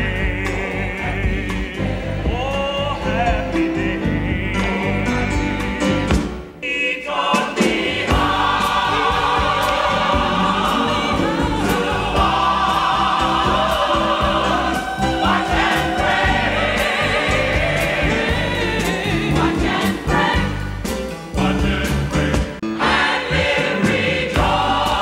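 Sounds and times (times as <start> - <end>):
gospel choir singing: 0.0 - 25.0.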